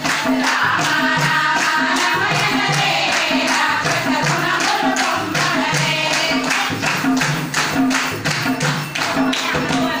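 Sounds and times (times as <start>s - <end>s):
group singing in unison: 0.0s - 10.0s
hand claps: 0.0s - 10.0s.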